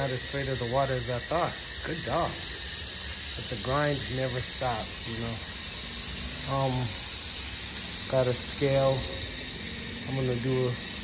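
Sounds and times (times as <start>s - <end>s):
spraying water hiss: 0.0s - 11.0s.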